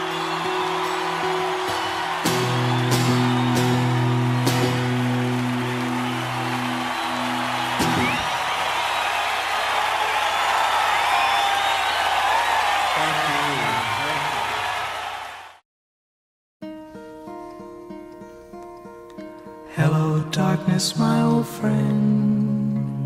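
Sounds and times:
acoustic guitar chord ringing: 0:00.0 - 0:08.3
audience applause: 0:00.0 - 0:15.6
whistles and cheers: 0:00.0 - 0:15.6.

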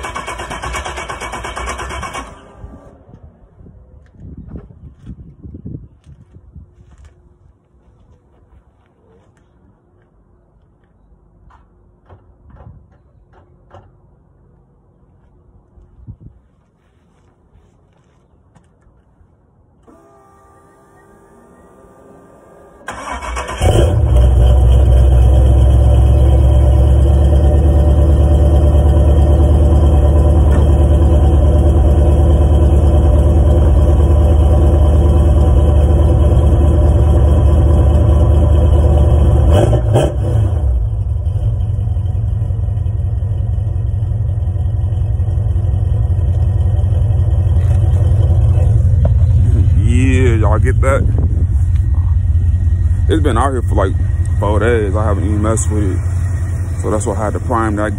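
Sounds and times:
car engine starting and idling: 0:00.0 - 0:03.6, 0:19.8 - 0:57.9.

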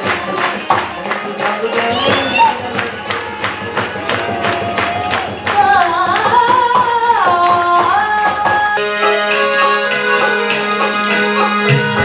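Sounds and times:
barrel drum fast beat: 0:00.0 - 0:08.8
person singing ornamented line: 0:01.5 - 0:03.0.

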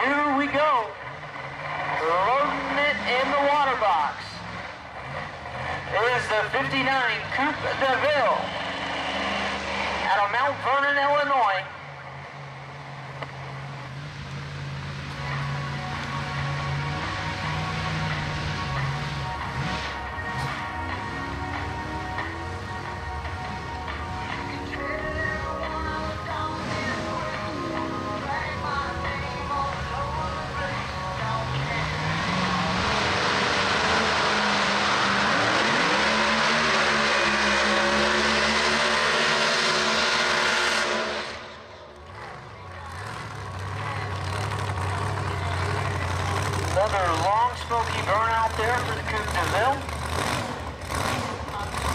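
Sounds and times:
car engine idling and revving: 0:00.0 - 0:51.9.

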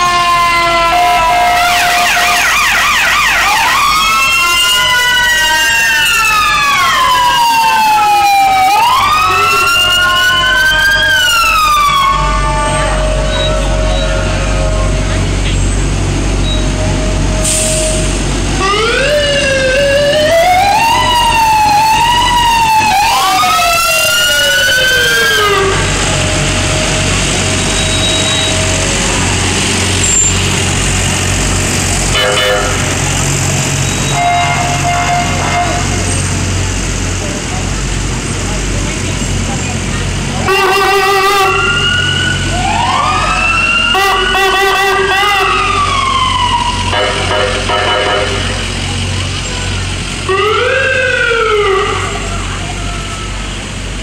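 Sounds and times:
emergency sirens wailing: 0:00.0 - 0:54.0
truck engines rumbling: 0:00.0 - 0:54.0.

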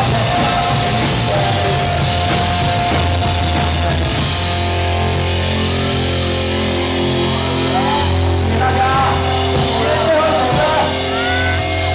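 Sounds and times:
electric guitars ringing chords: 0:00.0 - 0:11.9
live rock band playing: 0:00.0 - 0:11.9.

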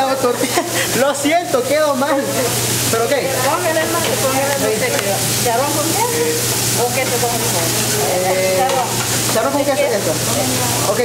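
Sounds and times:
food sizzling on a hot griddle: 0:00.0 - 0:11.0
people talking: 0:00.0 - 0:11.0.

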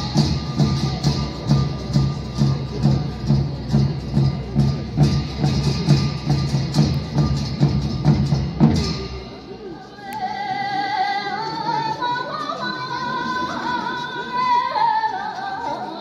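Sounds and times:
drum and cymbals beat: 0:00.0 - 0:09.5.

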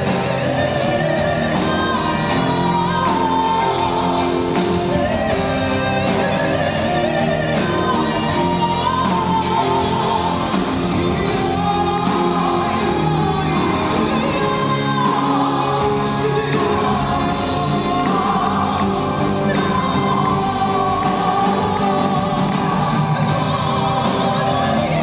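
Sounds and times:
electric guitars: 0:00.0 - 0:25.0
keyboards: 0:00.0 - 0:25.0.

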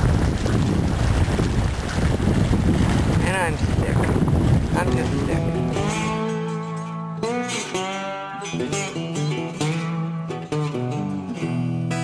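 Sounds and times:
wind buffeting microphone: 0:00.0 - 0:06.3
guitar music: 0:04.1 - 0:12.0.

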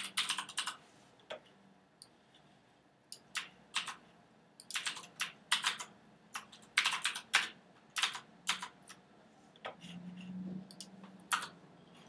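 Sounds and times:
computer keyboard typing: 0:00.0 - 0:00.8, 0:03.1 - 0:04.0, 0:04.6 - 0:09.0, 0:10.7 - 0:11.6.

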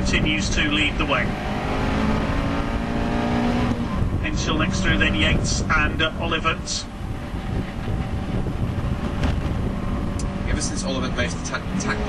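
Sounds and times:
car engine at steady revs: 0:00.0 - 0:12.0.

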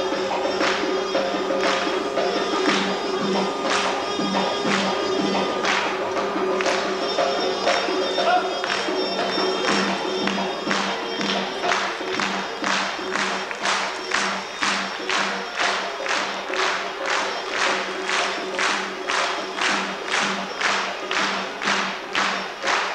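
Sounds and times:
folk dance music: 0:00.0 - 0:22.9
percussion beating even rhythm: 0:00.0 - 0:22.9.

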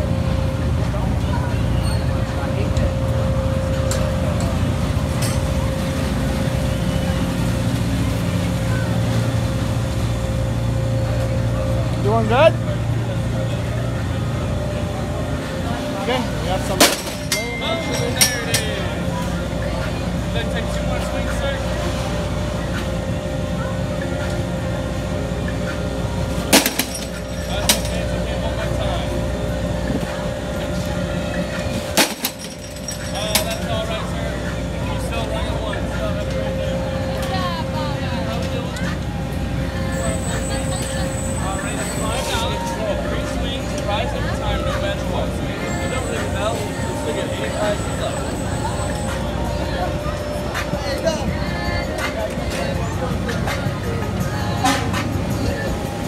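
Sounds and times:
crowd voices: 0:00.0 - 0:56.0
hum of ride machinery: 0:00.0 - 0:56.0.

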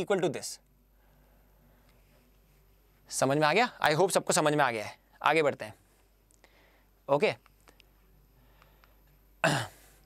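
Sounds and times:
man clearing his throat: 0:09.4 - 0:10.0.

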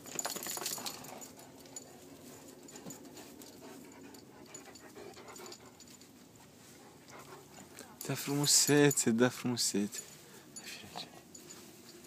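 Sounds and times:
light scuffling: 0:00.0 - 0:12.0
dog panting: 0:00.8 - 0:08.0.

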